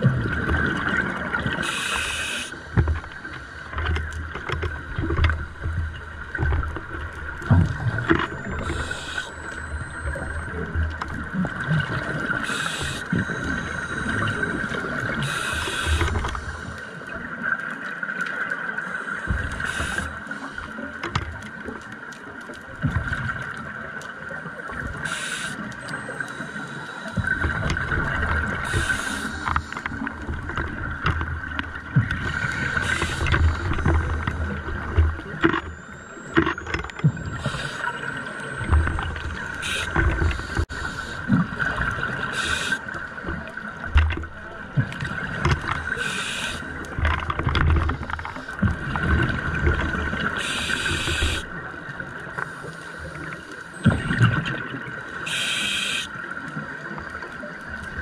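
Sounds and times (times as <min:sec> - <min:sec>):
exhaled air bubbling: 0:00.0 - 0:02.4
diver breathing through regulator: 0:55.2 - 0:56.1.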